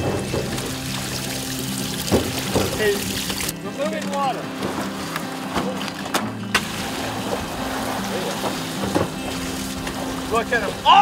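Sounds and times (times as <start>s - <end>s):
water gushing from hose: 0.0s - 3.6s, 6.5s - 11.0s
background music: 0.0s - 11.0s
water splashing on deck: 0.0s - 11.0s.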